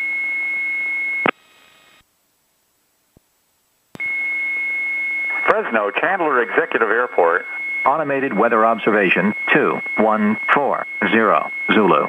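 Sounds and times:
faint radio hiss: 1.2s - 4.1s, 5.3s - 12.0s
steady high-pitched radio tone: 4.0s - 12.0s.

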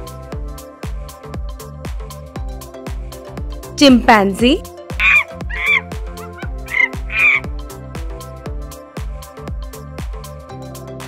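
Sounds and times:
background music with beat: 0.0s - 11.0s
chimpanzee cries: 5.0s - 7.5s.

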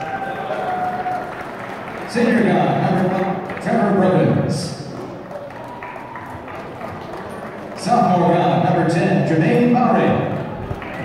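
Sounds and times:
light clapping: 0.0s - 4.0s, 4.9s - 7.9s, 10.3s - 11.0s
low crowd noise: 0.0s - 11.0s.

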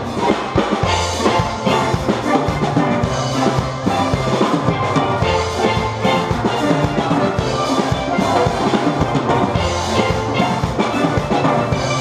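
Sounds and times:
steel band playing: 0.0s - 12.0s.

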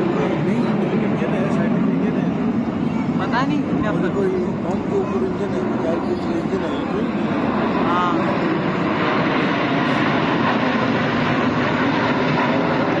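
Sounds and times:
people talking: 0.0s - 10.0s
jet engines passing overhead: 0.0s - 13.0s.

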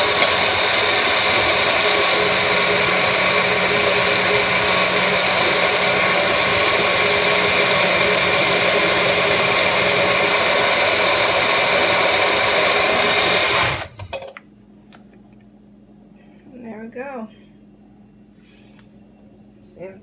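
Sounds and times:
blender motor running: 0.0s - 14.2s.

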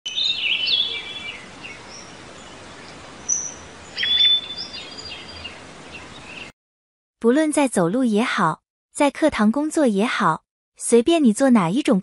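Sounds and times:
birds chirping and singing: 0.1s - 6.5s
outdoor background hiss: 0.1s - 6.5s.

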